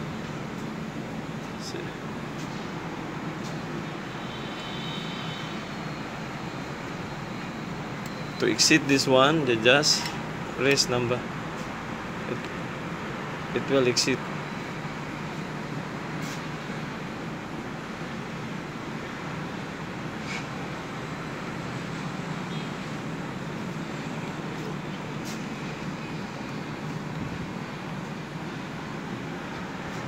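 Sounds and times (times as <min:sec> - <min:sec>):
air conditioner unit humming: 0:00.0 - 0:30.0.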